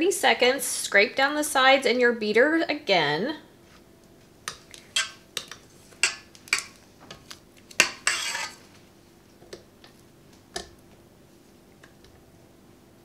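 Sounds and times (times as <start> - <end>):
spatula scraping metal mixer bowl: 7.8 - 8.7.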